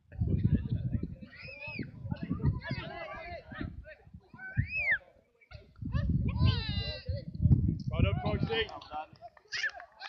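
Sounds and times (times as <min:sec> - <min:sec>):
wind rumble on microphone: 0:00.0 - 0:09.3.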